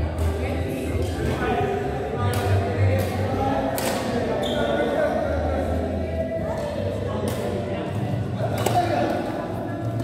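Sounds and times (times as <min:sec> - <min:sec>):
voices chattering in echoing hall: 0:00.0 - 0:10.0
shoe squeak: 0:04.4 - 0:04.9.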